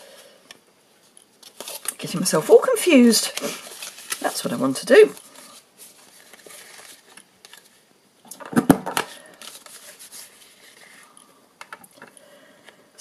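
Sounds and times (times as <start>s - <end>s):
paper rustling and scraping: 1.4s - 2.3s, 2.9s - 7.8s, 9.0s - 11.1s.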